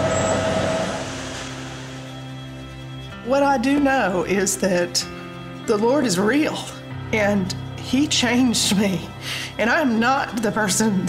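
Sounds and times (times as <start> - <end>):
construction machinery rumble: 0.0 - 2.8.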